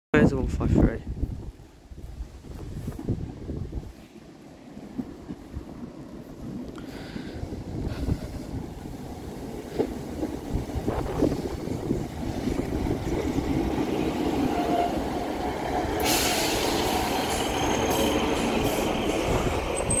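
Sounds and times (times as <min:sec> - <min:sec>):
diesel railcar engine: 0:02.9 - 0:20.0
train wheels on rails: 0:03.8 - 0:20.0
loud hiss: 0:15.9 - 0:19.6.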